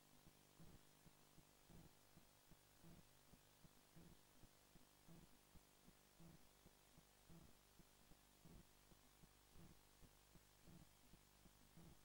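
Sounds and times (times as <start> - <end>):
faint steady hum: 0.0 - 12.0
soft low pulse: 0.1 - 12.0.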